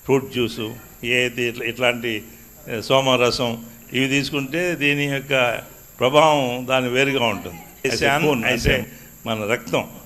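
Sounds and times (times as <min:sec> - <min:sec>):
faint high-pitched whine: 0:00.0 - 0:10.0
man speaking into a microphone: 0:00.0 - 0:10.0.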